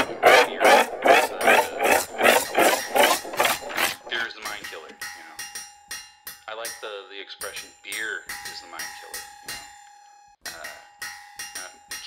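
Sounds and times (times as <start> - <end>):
rhythmic rasping scraping noise: 0.0 - 5.8, 6.4 - 9.8.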